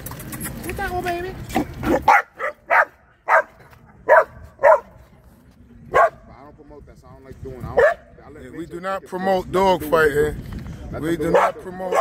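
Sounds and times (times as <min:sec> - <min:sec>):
puppy barking: 0:01.8 - 0:05.0, 0:05.9 - 0:06.2, 0:07.8 - 0:08.0, 0:11.3 - 0:12.0.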